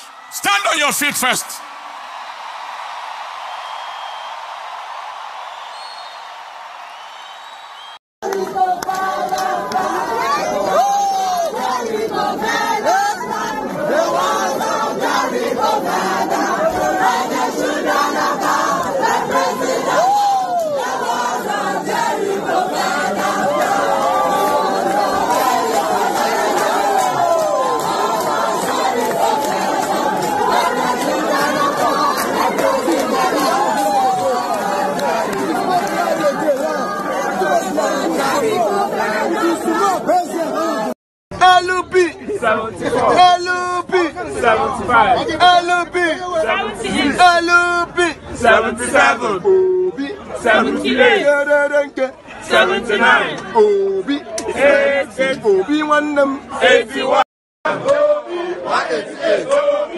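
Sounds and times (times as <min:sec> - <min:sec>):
congregation applauding: 0:00.0 - 0:09.6, 0:23.5 - 0:39.9
crowd shouting and chattering: 0:00.0 - 0:59.9.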